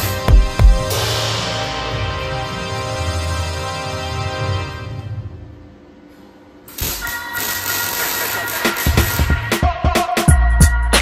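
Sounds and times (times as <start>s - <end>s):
arc welder crackling and hissing: 6.6s - 9.6s.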